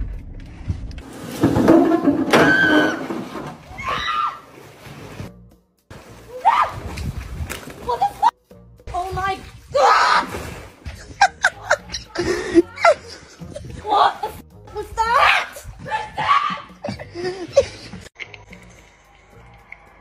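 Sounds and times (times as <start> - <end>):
background music: 3.7 - 20.0
water splashing: 8.9 - 11.8.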